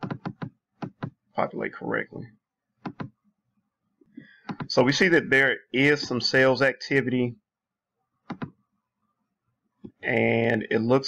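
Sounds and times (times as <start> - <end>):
computer mouse clicking: 2.8 - 3.2, 4.4 - 4.7, 8.3 - 8.6.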